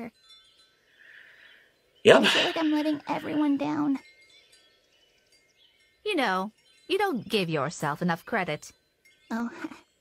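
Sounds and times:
faint high chime-like tones: 0.0 - 10.0.

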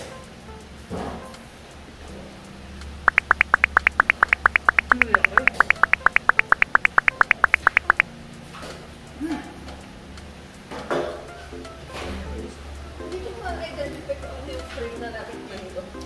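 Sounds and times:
high-pitched cartoon blips: 3.1 - 8.0.

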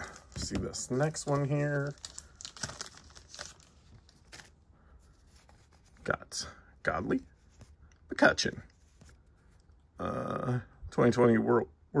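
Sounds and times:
wrapper tearing and crinkling: 0.0 - 4.6
cards rustling: 0.0 - 6.2.

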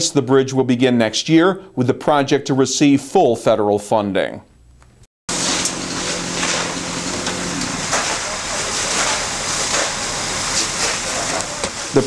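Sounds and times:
low steady hum: 4.6 - 12.0
fire flames burning: 5.3 - 12.0
water spraying: 5.3 - 12.0.

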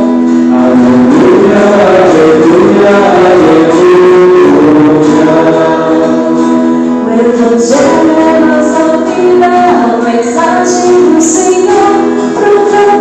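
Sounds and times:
acoustic guitar: 0.0 - 13.0
voices singing: 0.5 - 13.0.

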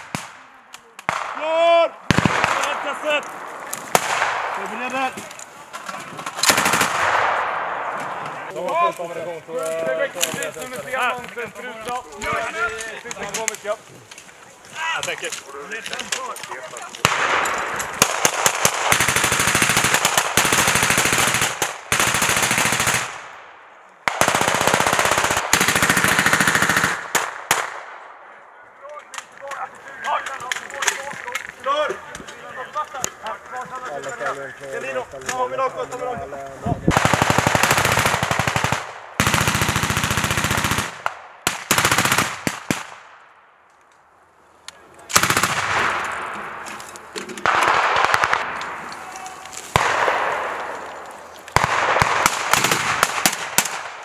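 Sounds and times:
single gunshots: 0.0 - 5.1, 17.0 - 20.6, 47.4 - 48.9, 49.7 - 50.9, 51.6 - 54.0
voices: 0.0 - 6.4, 7.7 - 18.0, 28.2 - 37.2, 48.2 - 51.5
automatic machine-gun fire: 6.4 - 7.4, 18.0 - 23.2, 24.1 - 27.8, 36.9 - 42.9, 45.2 - 46.0, 47.4 - 48.6, 51.6 - 54.0.

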